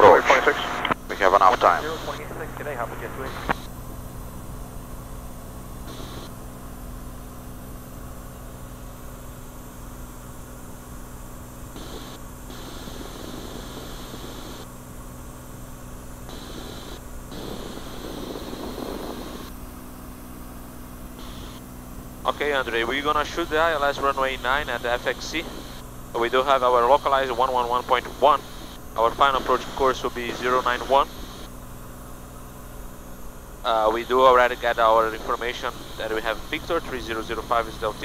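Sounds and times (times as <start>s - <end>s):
propeller plane engine droning: 0.0s - 38.0s.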